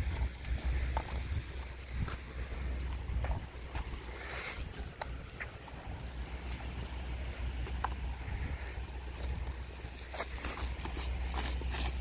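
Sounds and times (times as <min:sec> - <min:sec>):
faint ticks and rustles: 0:00.0 - 0:12.0
wind rumbling on microphone: 0:00.0 - 0:12.0.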